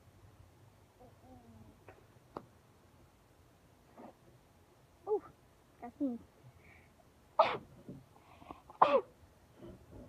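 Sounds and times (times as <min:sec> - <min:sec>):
person sneezing: 0:07.4 - 0:07.7.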